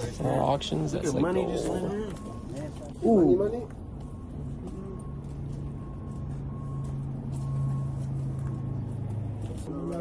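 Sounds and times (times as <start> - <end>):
vehicle engine hum: 0.0 - 10.0
backup alarm beeping: 0.6 - 9.7.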